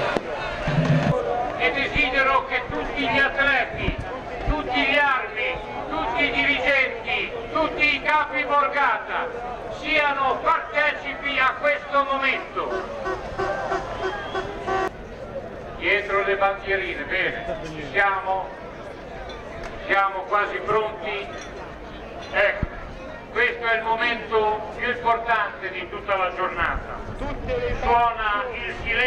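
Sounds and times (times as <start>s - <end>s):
people talking: 0.0s - 18.5s, 22.3s - 29.0s.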